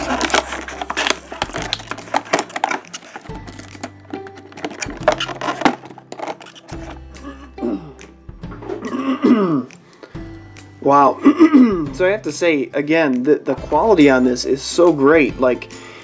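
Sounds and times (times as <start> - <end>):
plastic blister tray crinkling: 0.0 - 7.0
background music: 0.0 - 16.0.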